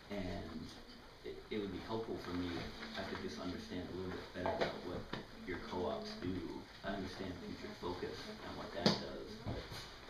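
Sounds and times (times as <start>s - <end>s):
person talking: 0.1s - 9.8s.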